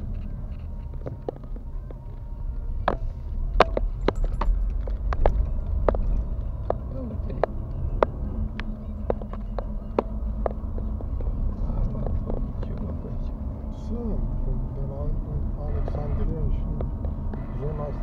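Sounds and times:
engine and tyre rumble: 0:00.0 - 0:18.0.

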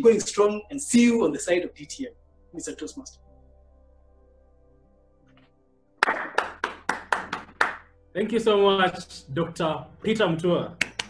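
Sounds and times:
person clapping hands: 0:06.0 - 0:07.9, 0:10.8 - 0:11.0.

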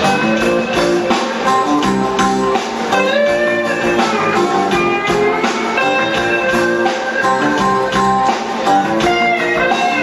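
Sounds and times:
electric guitar: 0:00.0 - 0:10.0.

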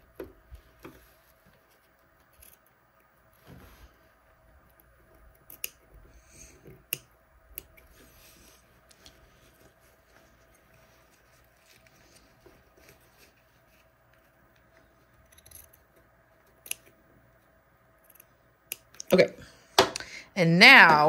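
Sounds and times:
scissors snipping: 0:05.4 - 0:05.8, 0:16.6 - 0:16.9.

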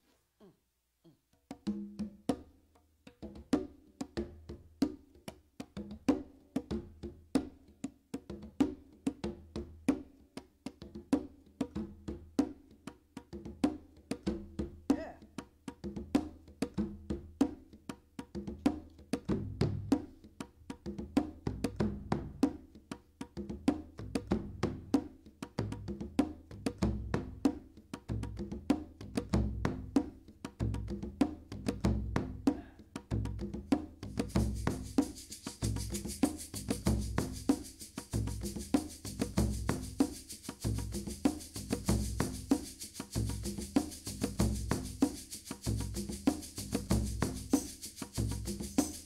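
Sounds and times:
hand-drum strokes: 0:23.4 - 0:49.0
shaker hissing: 0:34.0 - 0:49.0.

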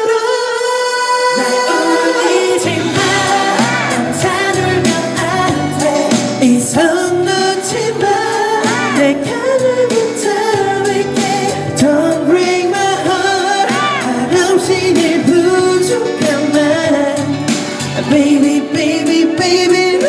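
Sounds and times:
man singing a ballad: 0:00.0 - 0:20.0
recorded backing track: 0:00.0 - 0:20.0.

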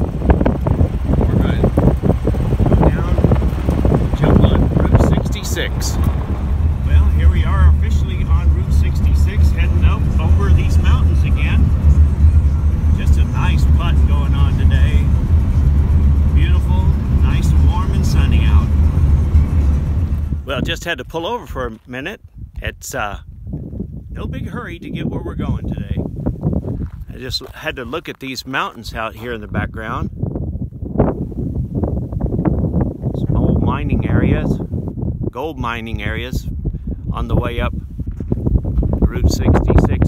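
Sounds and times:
road noise inside car: 0:00.0 - 0:20.7
car engine drone: 0:00.0 - 0:21.9.

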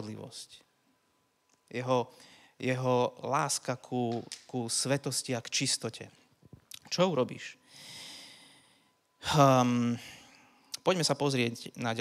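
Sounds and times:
man breathing in: 0:02.1 - 0:02.6, 0:07.6 - 0:09.1.

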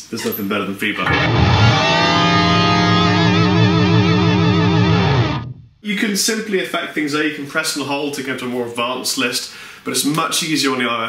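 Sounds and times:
electric guitar pitch-shifted note: 0:01.0 - 0:05.7.

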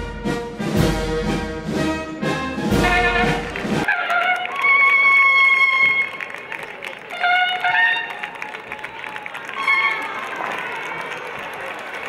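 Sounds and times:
brass instrument call: 0:00.0 - 0:06.3, 0:07.0 - 0:08.5, 0:09.5 - 0:10.3
crowd applause: 0:02.7 - 0:12.0.

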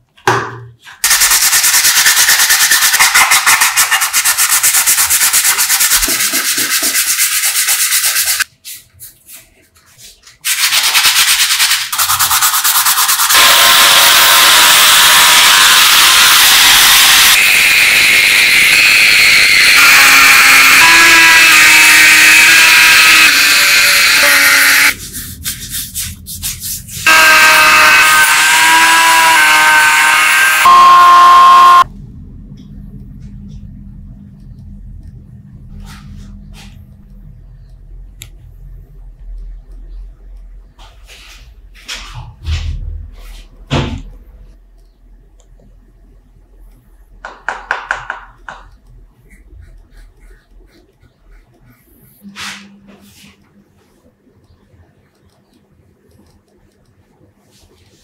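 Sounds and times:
sandpaper scraping wood: 0:01.0 - 0:17.4, 0:19.8 - 0:30.8.

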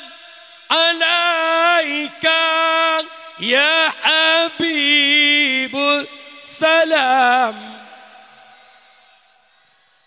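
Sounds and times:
echo of man singing through pa: 0:00.0 - 0:09.4.

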